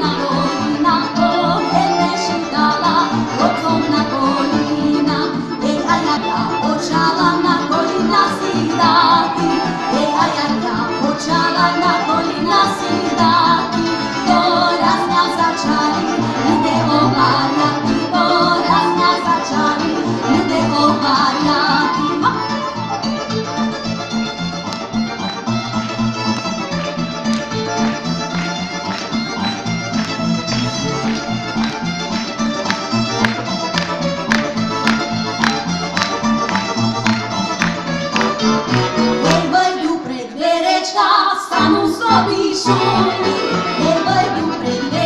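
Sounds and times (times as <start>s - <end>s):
women singing: 0.0s - 22.7s, 39.2s - 45.0s
double bass line: 0.0s - 40.0s, 41.6s - 45.0s
accordion: 0.0s - 45.0s
fiddle: 0.0s - 45.0s
folk band playing: 0.0s - 45.0s
violin: 0.0s - 45.0s.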